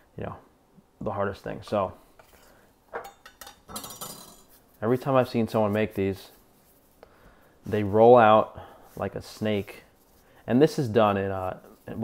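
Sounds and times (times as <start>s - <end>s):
knife clattering on stone: 3.0s - 4.6s.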